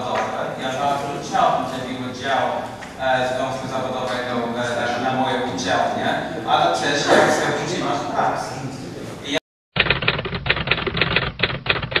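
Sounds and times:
typewriter key clacks: 0:09.8 - 0:12.0.

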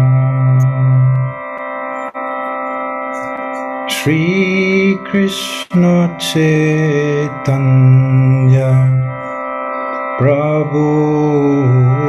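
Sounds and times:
harmonium sustained chord: 0:00.0 - 0:12.0.

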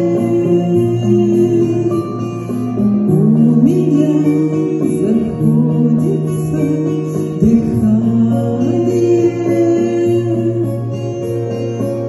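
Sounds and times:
woman singing pop song: 0:00.0 - 0:11.7
recorded backing track: 0:00.0 - 0:12.0.

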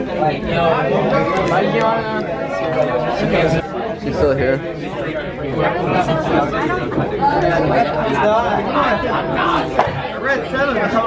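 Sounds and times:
teenagers chattering: 0:00.0 - 0:11.0.

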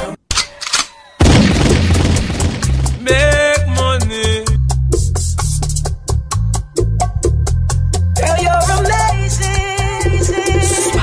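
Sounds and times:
sudden boom: 0:01.2 - 0:04.0
deep bass notes: 0:01.2 - 0:08.6.

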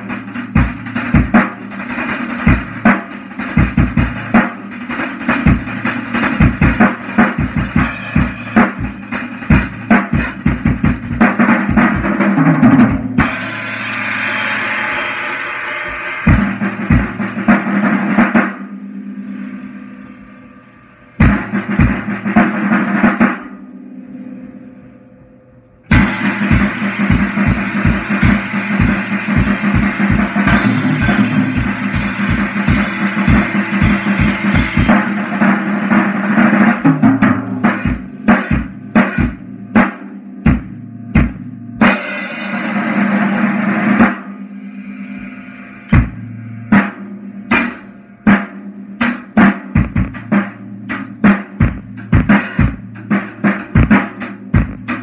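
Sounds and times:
drum kit played with sticks: 0:00.0 - 0:23.8, 0:25.8 - 0:55.0.

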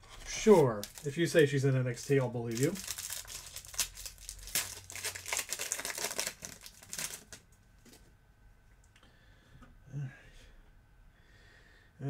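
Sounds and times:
foil wrapper crinkling: 0:00.3 - 0:07.4.

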